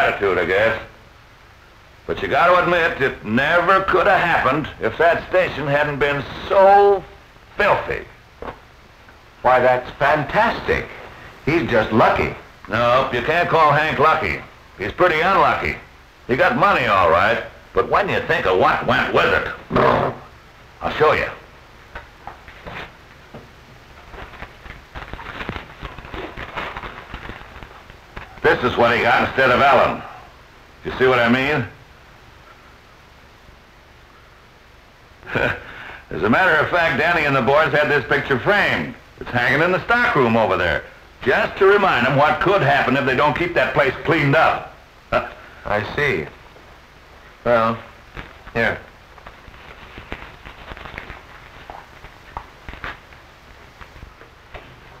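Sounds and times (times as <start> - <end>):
steady low hiss: 0.0 - 55.0
film soundtrack crackle: 2.1 - 30.1, 36.2 - 55.0
newspaper crackling and rustling: 22.0 - 29.6, 47.1 - 55.0.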